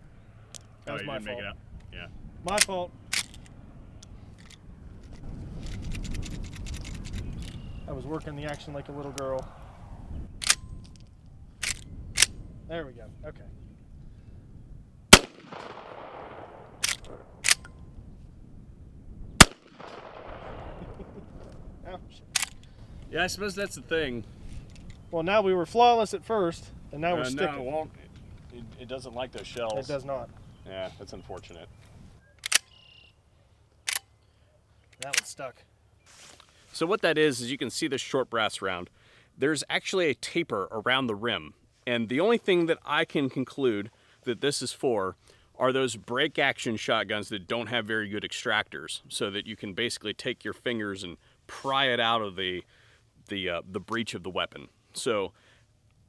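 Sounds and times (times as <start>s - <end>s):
shotgun lever action clacking: 11.6s - 12.4s, 15.2s - 17.8s, 22.3s - 22.7s, 32.4s - 32.8s, 33.9s - 34.1s, 35.0s - 35.4s.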